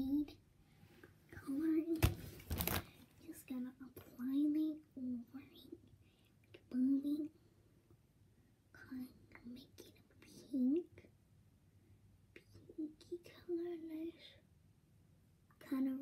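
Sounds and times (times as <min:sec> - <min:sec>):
microphone handling rustle: 0:02.0 - 0:02.9.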